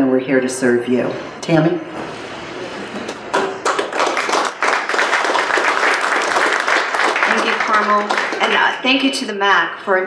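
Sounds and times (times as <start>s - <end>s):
audience applauding: 3.3s - 8.9s.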